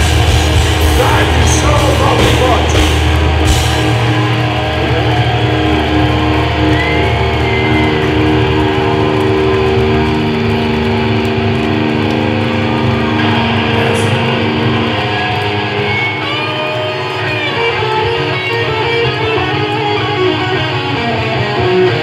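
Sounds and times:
distorted electric guitars ringing: 0.0 - 22.0.

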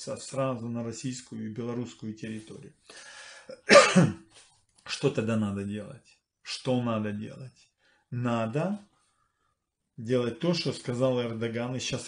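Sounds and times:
man coughing: 3.5 - 4.2.

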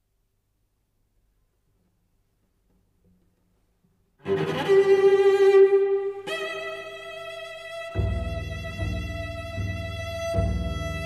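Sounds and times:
cello bowed note: 4.2 - 11.0.

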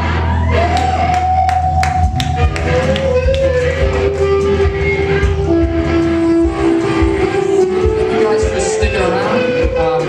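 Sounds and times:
bass: 0.0 - 10.0
drums: 0.0 - 10.0.

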